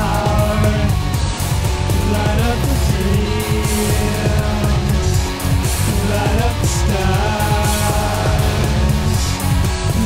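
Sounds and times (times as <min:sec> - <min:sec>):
heavy rock music with electric guitar: 0:00.0 - 0:10.0.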